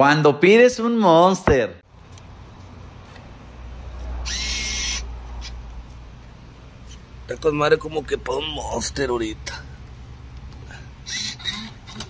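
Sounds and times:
steady low hum: 1.9 - 12.0
bill acceptor motor whirring: 4.2 - 5.0, 11.0 - 12.0.

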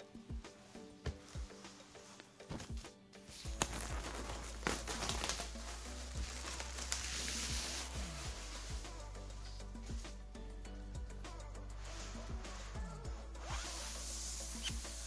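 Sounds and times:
background music: 0.0 - 15.0
plastic shrink-wrap crinkling: 3.5 - 8.7.

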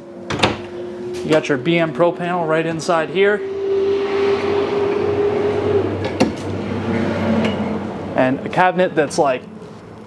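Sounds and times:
held tone: 0.0 - 7.7
steady hum: 0.0 - 8.7.

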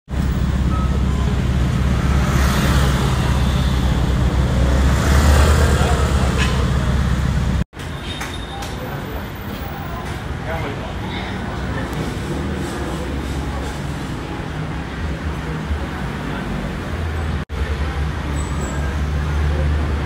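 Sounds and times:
traffic rumble: 0.1 - 20.0
voices of passers-by: 0.2 - 20.0.

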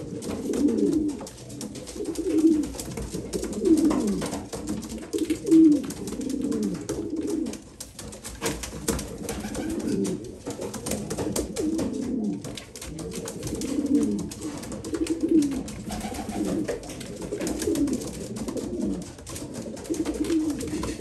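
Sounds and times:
pigeons cooing: 0.0 - 7.6, 9.2 - 21.0
clicks and scuffs of birds moving: 0.0 - 21.0.

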